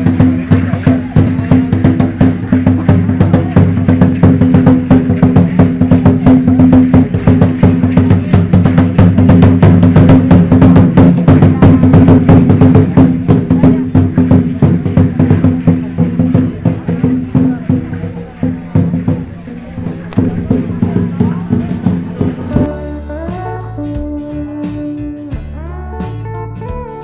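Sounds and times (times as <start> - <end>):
clicking rattling percussion: 0.0 - 22.7
large drum beaten fast: 0.0 - 24.6.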